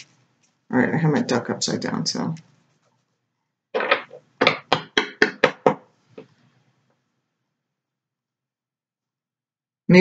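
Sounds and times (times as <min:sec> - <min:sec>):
knocking on card deck: 0:03.8 - 0:05.8.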